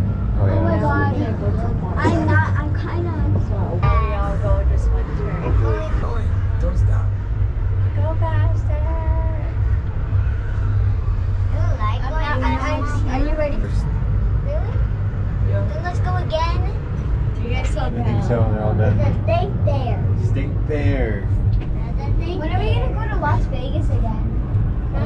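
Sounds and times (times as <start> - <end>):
voices chatting: 0.0 - 7.3, 7.9 - 25.0
ferris wheel gondola rumble: 0.0 - 25.0.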